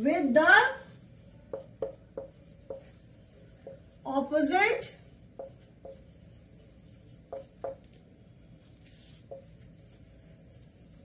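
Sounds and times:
marker writing on whiteboard: 0:00.2 - 0:11.0.

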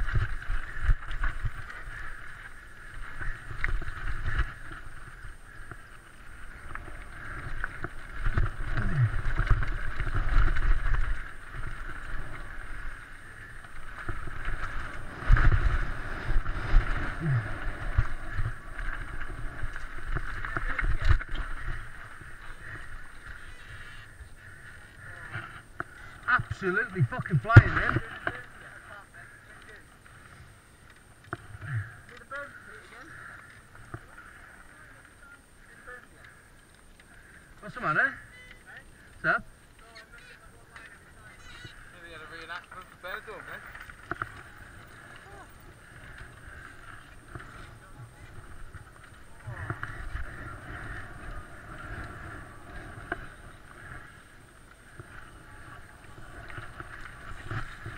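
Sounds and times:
wind buffeting microphone: 0:00.0 - 0:23.4
bike tyres rattling on rough ground: 0:00.0 - 0:57.9.

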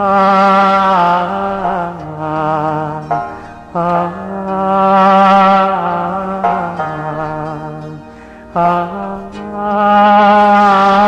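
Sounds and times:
person singing a long note: 0:00.0 - 0:11.0.

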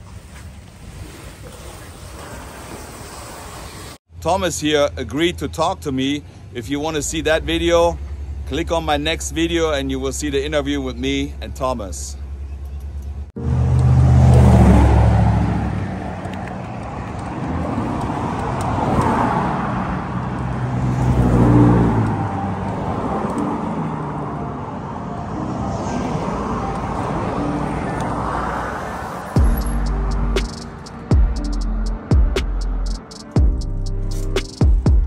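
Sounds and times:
cars passing by: 0:00.0 - 0:35.0.

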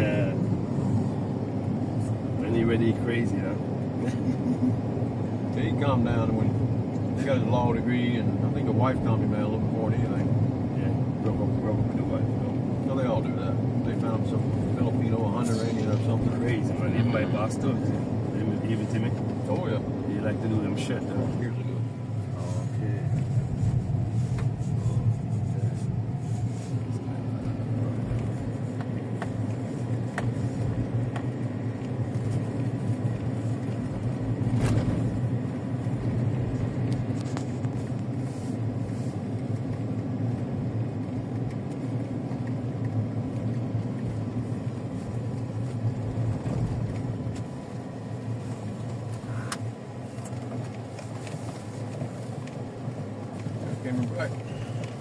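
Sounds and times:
tyre and engine rumble: 0:00.0 - 0:55.0.

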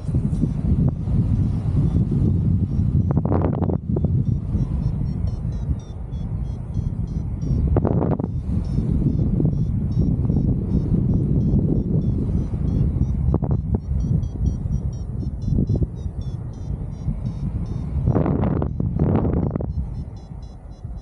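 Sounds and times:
wind buffeting microphone: 0:00.0 - 0:21.0
rapid high beeps: 0:01.8 - 0:21.0.

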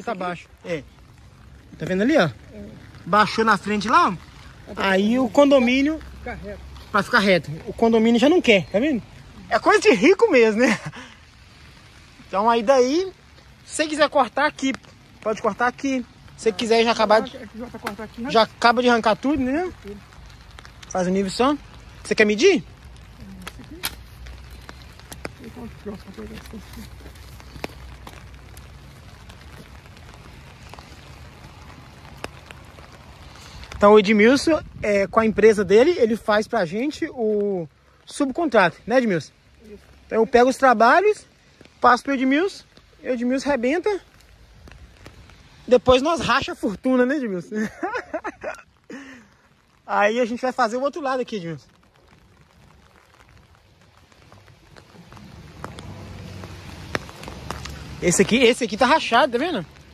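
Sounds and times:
footsteps on wet asphalt: 0:00.0 - 0:59.9
light rain on pavement: 0:00.0 - 0:59.9
sharp drip-like ticks: 0:00.0 - 0:59.9.

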